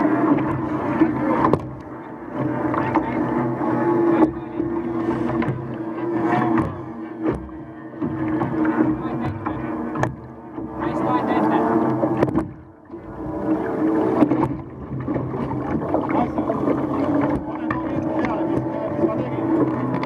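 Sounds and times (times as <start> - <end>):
outboard boat engine humming: 0.0 - 20.0.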